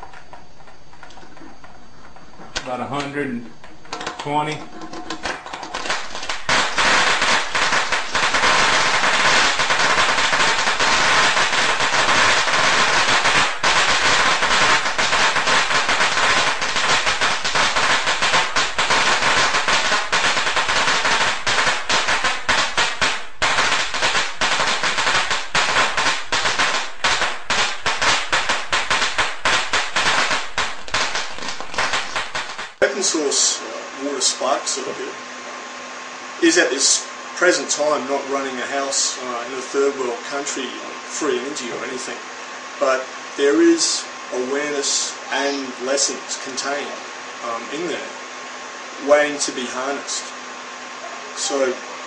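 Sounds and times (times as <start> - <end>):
crackle of snapping sparks: 0.0 - 35.0.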